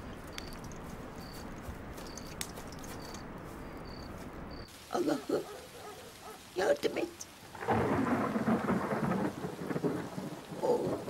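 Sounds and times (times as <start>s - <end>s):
steady rain: 3.1s - 11.0s
thunder rumbling: 7.5s - 11.0s.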